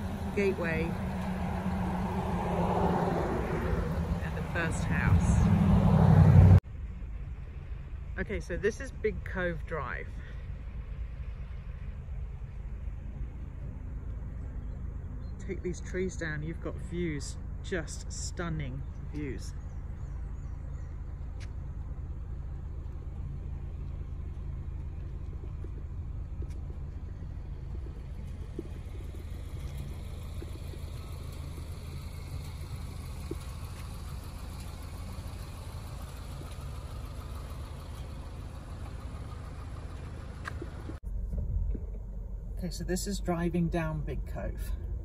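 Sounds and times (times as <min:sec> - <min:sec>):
car engine and tyres rumbling: 0:00.0 - 0:45.0.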